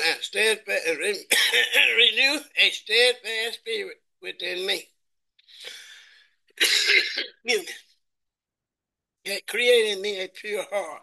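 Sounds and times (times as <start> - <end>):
man coughing: 1.3 - 2.0, 6.6 - 7.8
faint breath in: 5.4 - 6.4.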